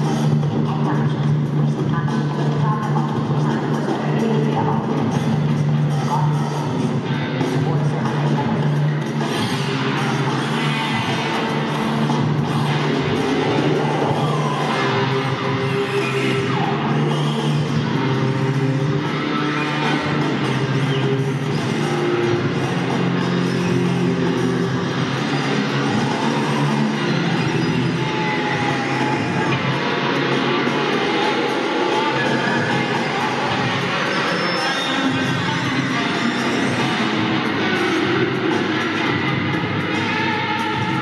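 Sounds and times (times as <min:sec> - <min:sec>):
electric guitar through effects: 0:00.0 - 0:41.0
live music: 0:00.0 - 0:41.0.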